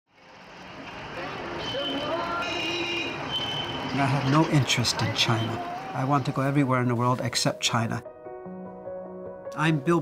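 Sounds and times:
traffic noise: 0:00.1 - 0:08.0
voices: 0:00.9 - 0:07.2.

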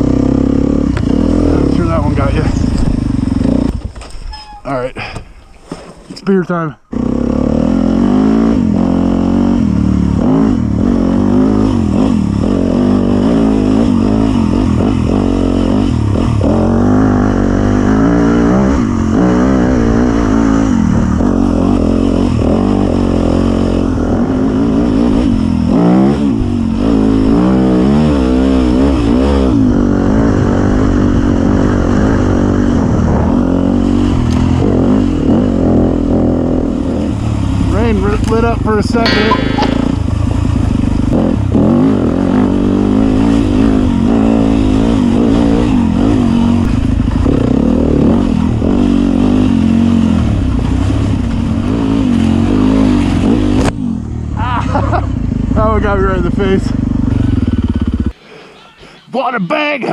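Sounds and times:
dirt bike engine revving: 0:00.0 - 0:03.8, 0:06.9 - 0:38.1, 0:39.0 - 0:53.7.

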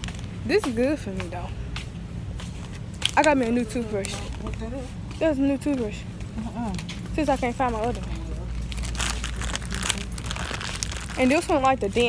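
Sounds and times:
steady low hum: 0:00.0 - 0:12.0
crinkling handling noise: 0:06.7 - 0:12.0.

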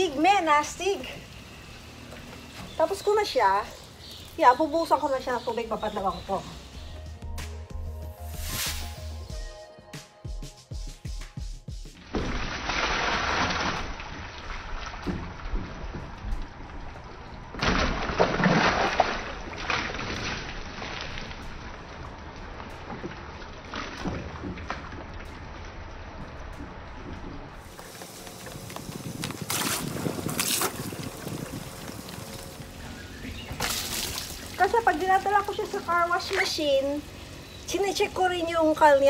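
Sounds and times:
background music: 0:06.3 - 0:12.0
water splashing onto car: 0:12.0 - 0:38.0.

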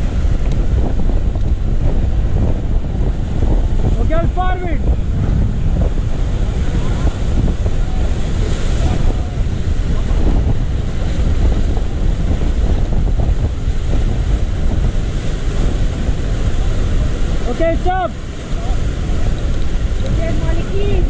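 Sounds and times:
whitewater rushing: 0:00.0 - 0:21.0
wind buffeting microphone: 0:00.0 - 0:21.0.

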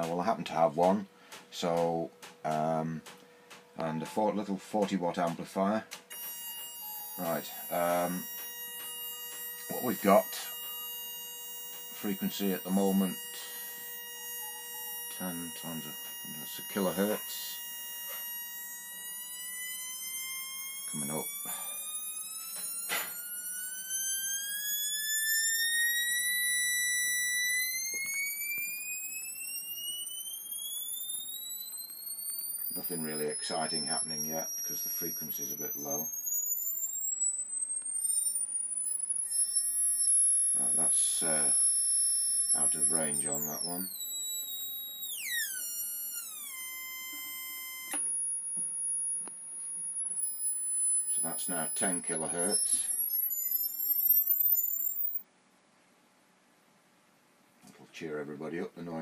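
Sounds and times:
very high whine: 0:00.0 - 0:55.3
sharp click: 0:00.8 - 0:10.9, 0:47.9 - 0:55.2
rising electronic tone: 0:06.1 - 0:55.2
click: 0:27.8 - 0:40.6, 0:47.9 - 0:55.2.

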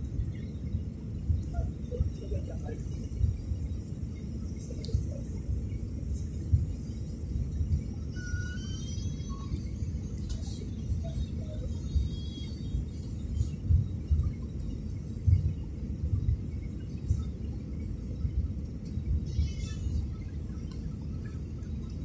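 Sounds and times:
airliner cabin engine rumble: 0:00.0 - 0:22.0
faint high wavering tones: 0:06.1 - 0:15.5.

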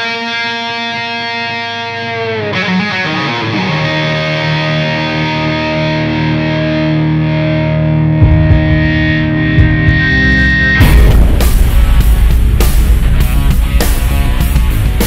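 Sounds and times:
distorted electric guitar: 0:00.0 - 0:15.0
rock music with drums: 0:00.0 - 0:15.0.

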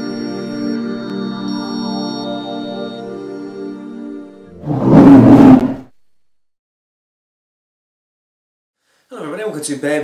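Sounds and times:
loud animal roar: 0:04.6 - 0:05.9.

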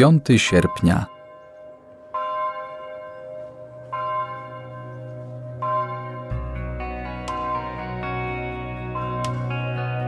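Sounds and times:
bell ringing: 0:00.0 - 0:06.4.

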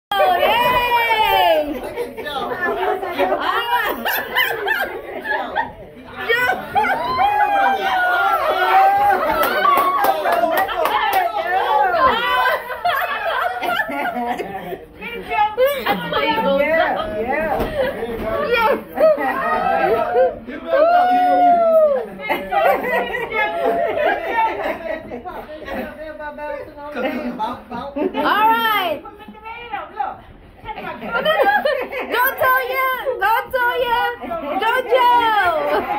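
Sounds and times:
people talking and calling out: 0:00.1 - 0:35.9.

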